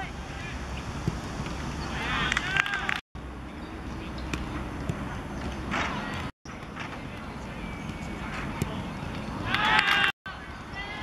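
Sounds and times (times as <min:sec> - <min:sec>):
players shouting and cheering: 0:01.8 - 0:03.0, 0:06.9 - 0:11.0.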